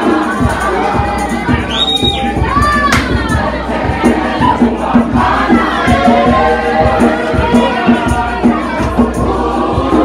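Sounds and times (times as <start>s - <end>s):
low thumping beat: 0.0s - 10.0s
youth choir singing: 0.0s - 10.0s.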